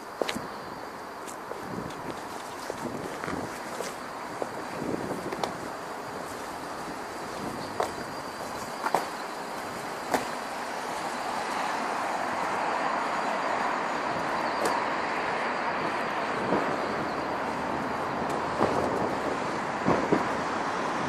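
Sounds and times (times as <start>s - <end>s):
road traffic rushing: 0.0s - 21.0s.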